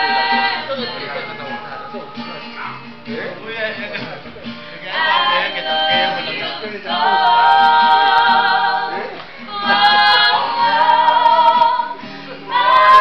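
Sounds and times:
group singing: 0.0s - 2.8s, 4.8s - 13.0s
acoustic guitar strumming: 0.0s - 13.0s.

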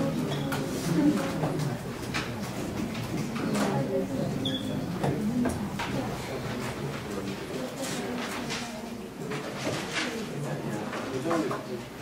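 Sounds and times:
murmur of quiet voices: 0.0s - 12.0s.

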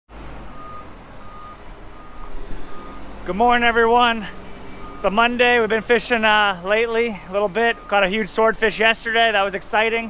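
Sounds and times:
reversing alarm beeping: 0.4s - 10.0s.

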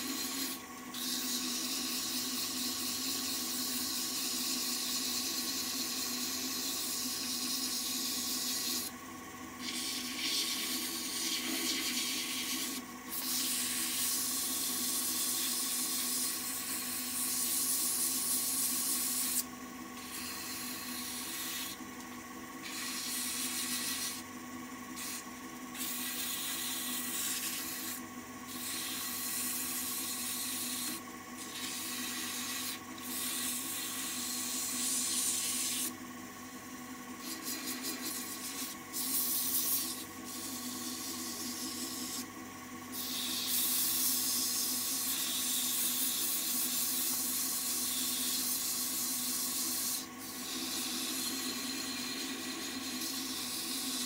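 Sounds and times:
lathe motor hum: 0.0s - 54.0s.

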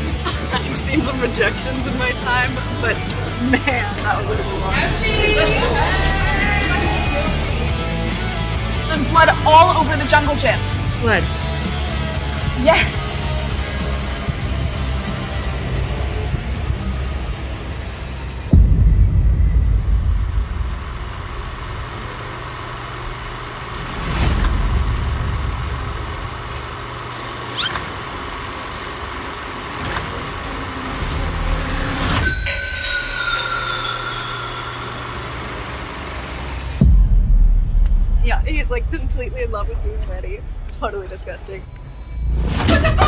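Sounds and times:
low rumbling drone: 0.0s - 9.4s, 13.4s - 43.0s.

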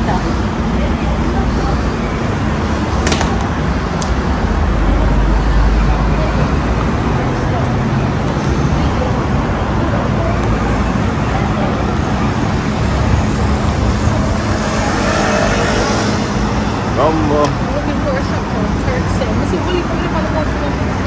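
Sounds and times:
city street traffic: 0.0s - 21.0s
faint voices of passersby: 0.0s - 21.0s.

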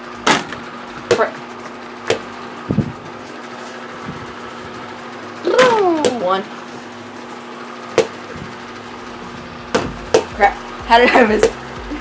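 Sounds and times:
steady low hum: 0.0s - 12.0s
ball knocking on door: 9.7s - 10.4s.

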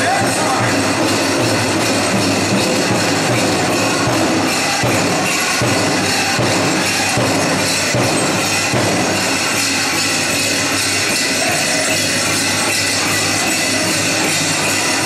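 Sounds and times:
metal cones and bells jingling: 0.0s - 15.0s
powwow drum: 0.0s - 15.0s.

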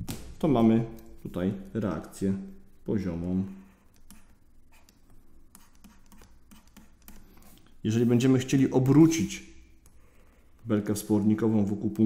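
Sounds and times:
stylus scratching on tablet: 1.0s - 8.4s.

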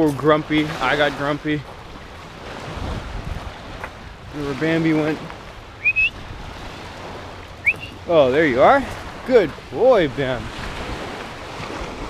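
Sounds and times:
surf: 0.0s - 12.0s
wind: 0.0s - 12.0s
person whistling: 5.8s - 6.2s, 7.6s - 8.0s.

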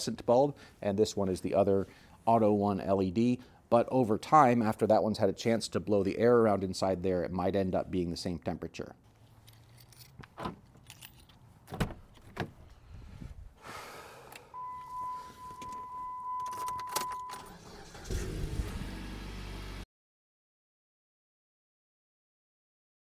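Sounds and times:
high warning chime: 14.6s - 17.6s
car engine starting and running: 14.6s - 19.8s
door and key clicks: 16.4s - 17.5s.

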